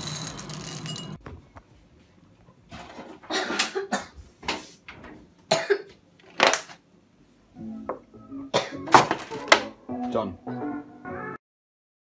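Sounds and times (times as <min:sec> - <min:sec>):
person coughing: 0:03.3 - 0:04.2, 0:05.5 - 0:05.9, 0:08.5 - 0:09.0
background music: 0:07.5 - 0:11.4.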